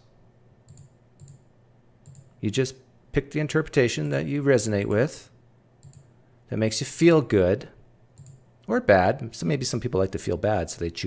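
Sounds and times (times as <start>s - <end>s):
computer mouse clicks: 0.7s - 2.3s, 5.8s - 6.1s, 8.2s - 8.4s.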